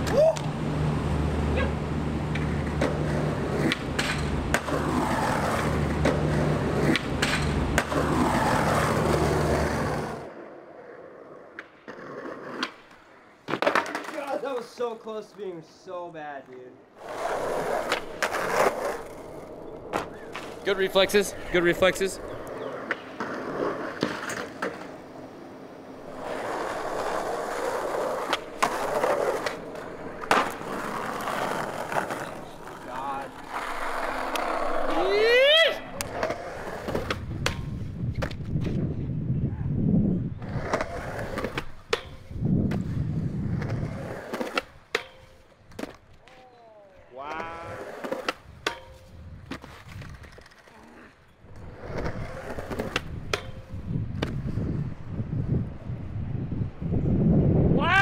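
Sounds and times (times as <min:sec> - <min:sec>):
skateboard wheels rumbling: 0:00.0 - 0:15.3, 0:16.9 - 0:46.4, 0:47.4 - 0:58.0
skateboard pops and clacks: 0:02.3 - 0:05.0, 0:06.0 - 0:09.6, 0:11.5 - 0:14.7, 0:27.6 - 0:32.4, 0:35.9 - 0:38.8, 0:40.7 - 0:43.0, 0:43.6 - 0:46.4, 0:51.5 - 0:54.5
skateboard clattering: 0:02.3 - 0:10.3, 0:11.5 - 0:14.7, 0:26.0 - 0:38.4.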